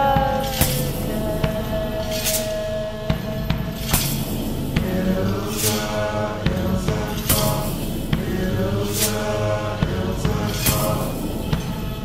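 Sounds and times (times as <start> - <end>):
percussion beat: 0.0 - 12.0.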